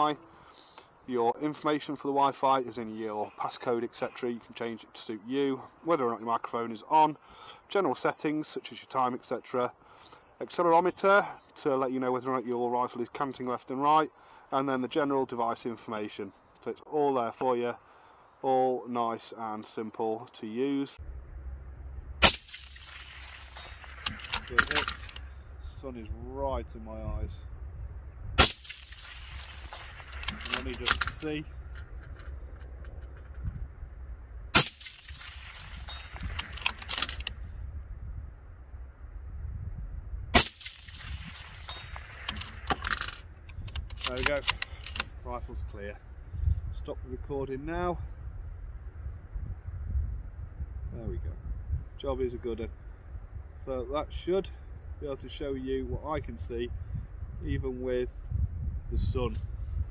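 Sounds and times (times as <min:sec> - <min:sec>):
wind buffeting microphone: 0:21.0 - 0:59.9
suppressed rifle shot with echo: 0:21.9 - 0:25.6, 0:28.4 - 0:33.2, 0:34.5 - 0:37.3, 0:40.3 - 0:42.8.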